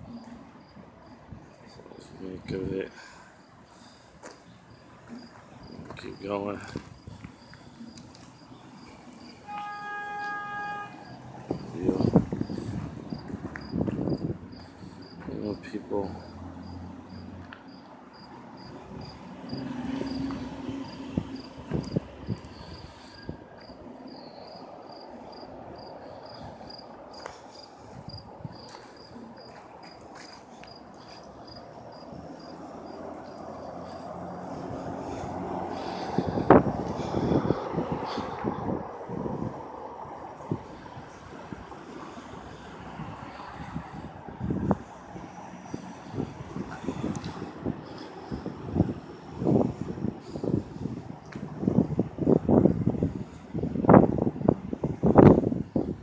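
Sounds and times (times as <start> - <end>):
passing traffic: 0.0 - 56.0
insect chirping: 3.2 - 5.9, 6.6 - 37.5.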